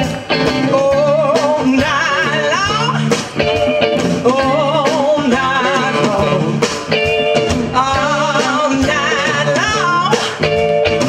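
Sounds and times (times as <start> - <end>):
blues band playing: 0.0 - 11.0
woman singing with vibrato: 0.6 - 10.7.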